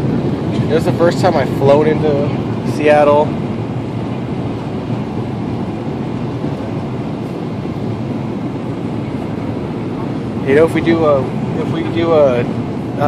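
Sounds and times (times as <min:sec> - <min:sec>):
jet cabin engine and airflow noise: 0:00.0 - 0:13.0.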